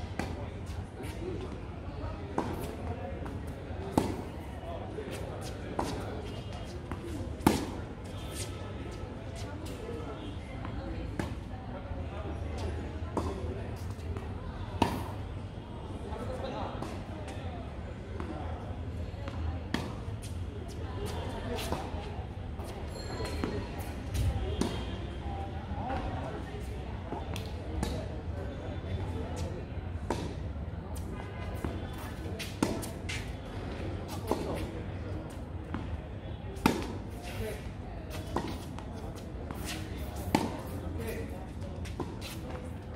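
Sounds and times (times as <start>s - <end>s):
tennis balls struck by rackets: 36.6s - 37.4s, 38.1s - 40.8s
tennis balls bouncing on hard court: 39.6s - 40.8s.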